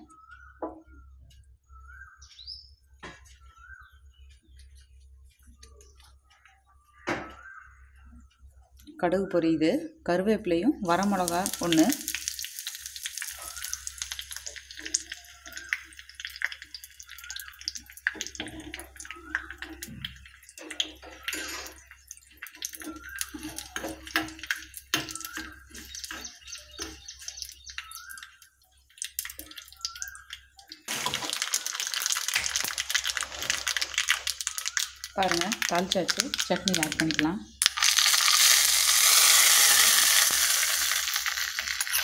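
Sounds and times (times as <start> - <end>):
crackles and pops: 10.9 - 42.0
leaves frying in hot oil: 10.9 - 42.0.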